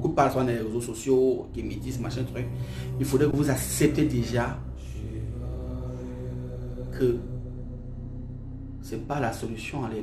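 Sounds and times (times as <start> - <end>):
drone of held low tones: 0.0 - 10.0.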